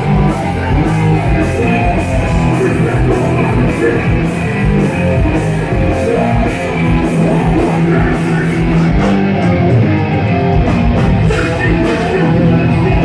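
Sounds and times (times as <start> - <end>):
punk band playing live: 0.0 - 13.0.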